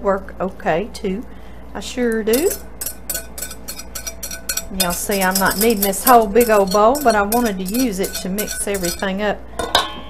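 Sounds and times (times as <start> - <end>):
person speaking: 2.0 - 2.7, 4.6 - 9.2
whisk scraping against bowl: 2.1 - 9.3.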